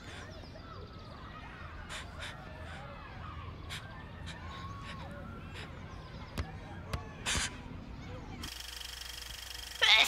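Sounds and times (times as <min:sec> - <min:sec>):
harsh bird calls: 0:00.0 - 0:08.5.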